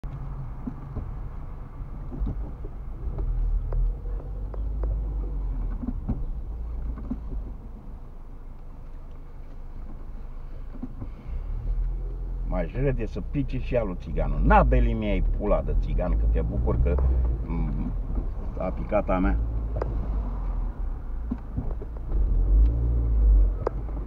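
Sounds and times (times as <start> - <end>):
car engine and road rumble: 0.0 - 24.0.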